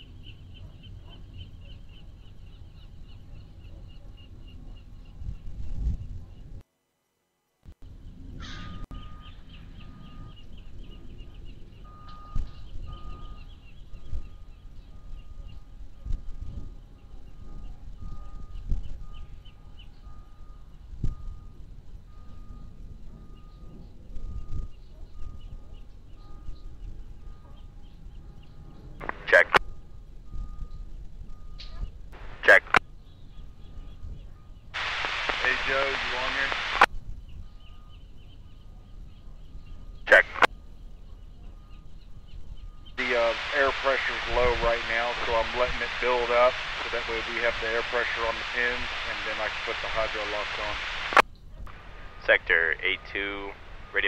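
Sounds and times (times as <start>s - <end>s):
faint steady tone: 0.0s - 54.0s
radio background hiss and hum: 29.0s - 29.6s, 32.1s - 32.8s, 34.8s - 36.9s, 40.1s - 40.5s, 43.0s - 54.0s
radio static burst: 29.0s - 29.6s, 32.2s - 32.8s, 34.8s - 36.9s, 40.1s - 40.5s, 43.0s - 54.0s.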